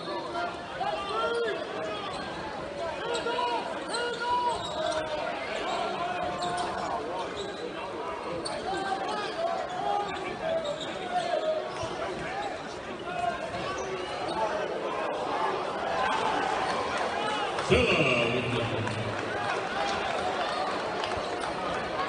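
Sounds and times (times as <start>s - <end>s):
spectators chatter: 0.0s - 22.0s.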